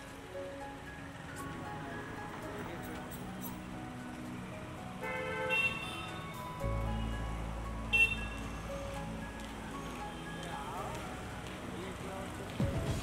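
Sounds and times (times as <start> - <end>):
music: 0.0 - 13.0
street traffic: 0.0 - 13.0.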